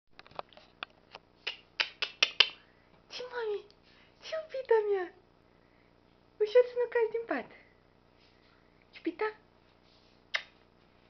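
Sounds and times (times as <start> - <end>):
fingers snapping: 1.4 - 2.6, 10.3 - 10.6.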